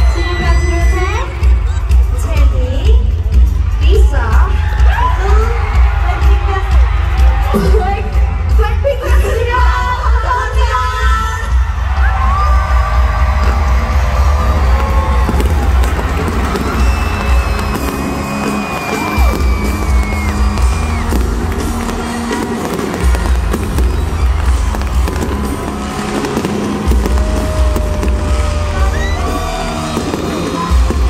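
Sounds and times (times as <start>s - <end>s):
concert music with heavy bass beat: 0.0s - 31.0s
stadium crowd cheering: 0.0s - 31.0s
fireworks crackling and popping: 12.4s - 31.0s.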